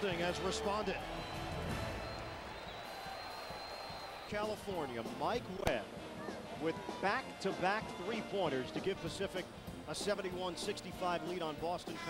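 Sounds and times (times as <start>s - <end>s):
arena crowd cheering: 0.0s - 8.3s.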